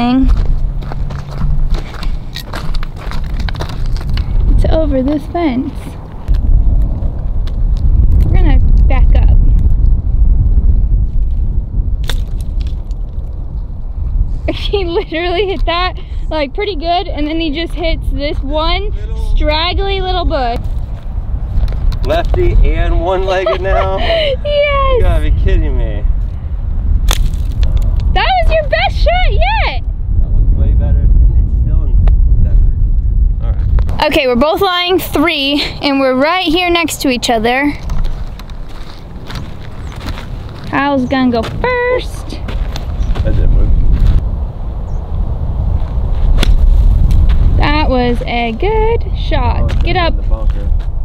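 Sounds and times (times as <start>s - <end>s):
footsteps crunching on gravel: 0.0s - 4.6s, 37.7s - 44.2s, 49.6s - 51.0s
wind rumble on microphone: 0.0s - 51.0s
sharp crack: 12.0s - 13.4s, 27.0s - 28.2s, 46.3s - 47.6s.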